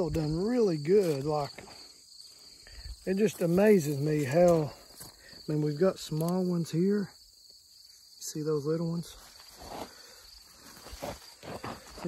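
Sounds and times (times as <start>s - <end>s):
leaves rustling: 0.0s - 6.8s, 8.8s - 12.0s
insects chirring: 0.0s - 12.0s.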